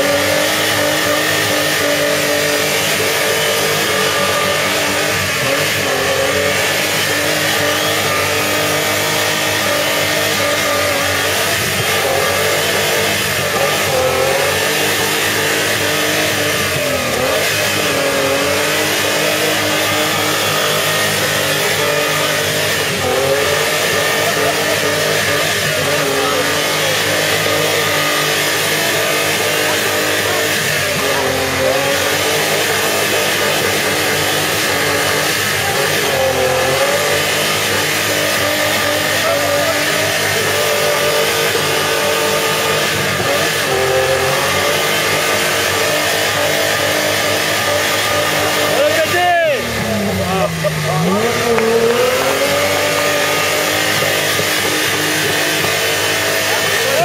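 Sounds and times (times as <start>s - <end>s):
buggy engine at high revs: 0.0s - 57.0s.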